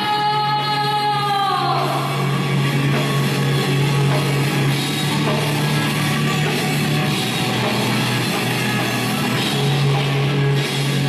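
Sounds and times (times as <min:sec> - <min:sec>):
rock instrumental music: 0:00.0 - 0:11.0.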